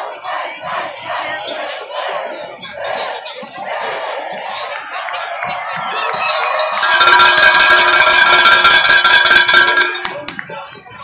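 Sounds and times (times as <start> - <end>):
metal bell clanging rapidly: 6.1 - 10.3.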